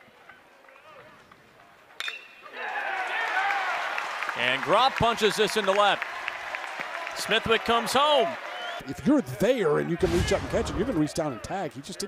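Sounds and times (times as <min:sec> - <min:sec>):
crowd cheering: 0:02.4 - 0:12.0.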